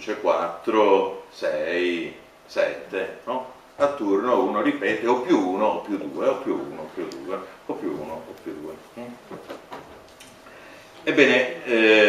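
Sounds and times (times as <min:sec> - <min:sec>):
microphone handling clicks: 0:08.2 - 0:10.4.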